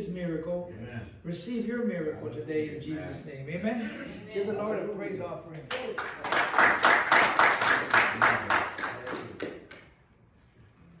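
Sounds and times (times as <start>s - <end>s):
rhythmic hand clapping: 5.5s - 10.0s.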